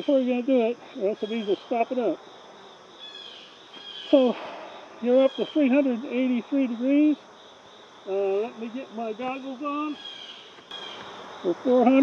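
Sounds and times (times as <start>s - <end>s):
faint insect chorus: 0.0s - 12.0s.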